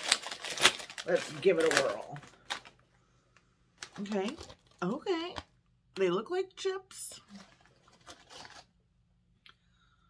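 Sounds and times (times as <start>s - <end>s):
crisp packet crinkling: 0.0s - 5.5s, 7.2s - 8.8s.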